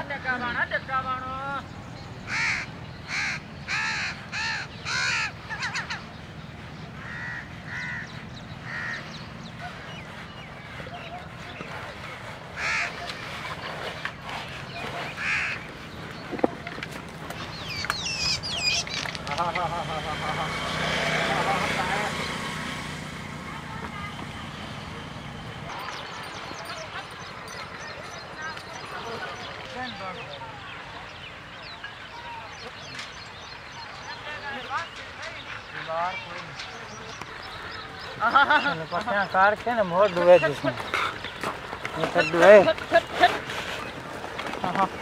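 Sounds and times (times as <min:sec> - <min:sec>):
crow cawing: 0:02.3 - 0:06.0, 0:07.0 - 0:09.2, 0:12.6 - 0:13.0, 0:15.2 - 0:15.6.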